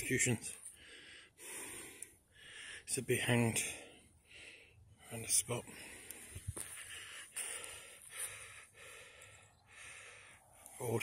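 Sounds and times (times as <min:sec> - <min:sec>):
footsteps crunching on twigs: 0:06.4 - 0:08.4.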